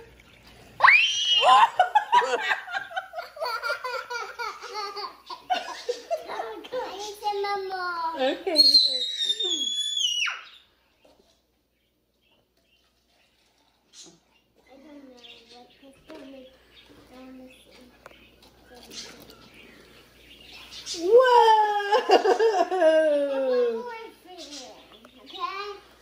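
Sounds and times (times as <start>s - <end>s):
child squealing: 0.8s - 1.8s, 8.6s - 10.6s.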